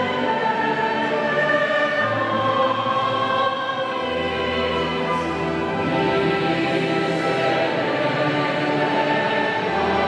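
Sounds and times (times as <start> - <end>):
choir singing held notes: 0.0 - 10.0
instrumental accompaniment: 0.0 - 10.0.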